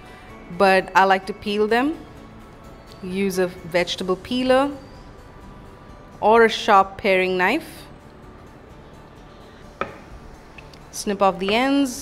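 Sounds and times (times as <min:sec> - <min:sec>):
metal utensil knocking on wooden board: 0:09.8 - 0:10.1.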